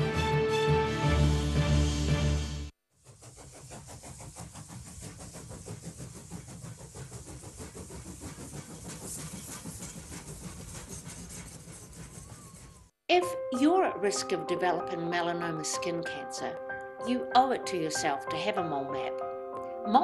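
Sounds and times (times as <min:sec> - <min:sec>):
steam locomotive exhaust chuffing: 0:03.0 - 0:13.0.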